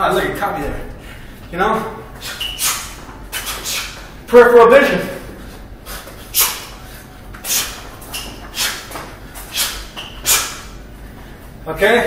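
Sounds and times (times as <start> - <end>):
sharp hissing exhales: 5.8 - 10.7.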